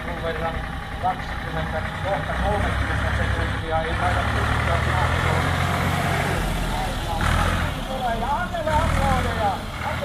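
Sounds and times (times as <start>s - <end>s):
tractor engine low rumble: 0.0s - 10.0s.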